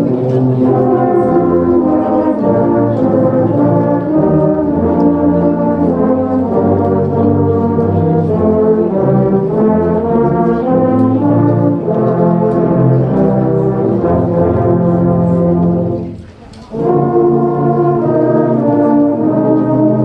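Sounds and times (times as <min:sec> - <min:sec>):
low brass ensemble playing carol: 0:00.0 - 0:20.0.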